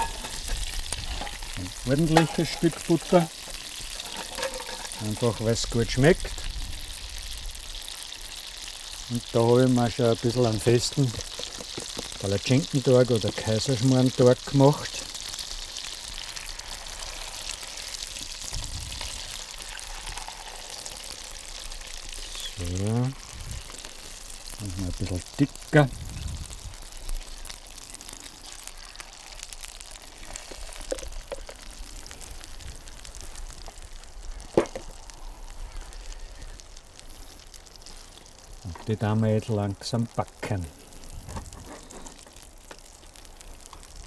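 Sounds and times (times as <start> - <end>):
batter sizzling in hot butter: 0.0 - 44.0.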